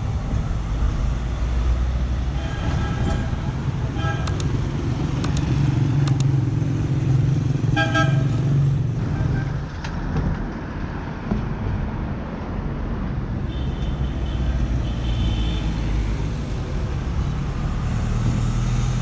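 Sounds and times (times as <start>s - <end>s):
passing vehicle engines: 0.0s - 19.0s
car horn toots: 7.8s - 8.3s.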